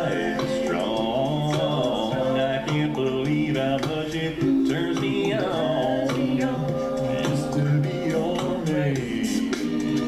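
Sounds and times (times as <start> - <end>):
male group singing in harmony: 0.0 - 10.0.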